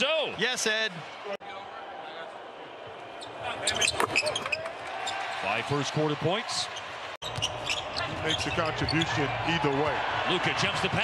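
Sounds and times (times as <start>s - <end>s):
sneaker squeaks on hardwood: 7.2s - 8.6s.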